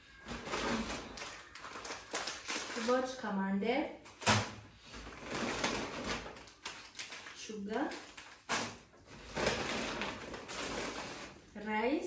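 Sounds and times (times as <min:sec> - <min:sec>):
plastic bag rustling: 0:00.1 - 0:03.2, 0:04.1 - 0:11.9.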